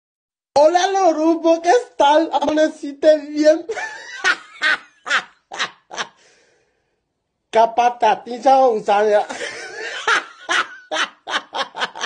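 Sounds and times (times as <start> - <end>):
man laughing: 3.6 - 6.2, 9.2 - 12.0.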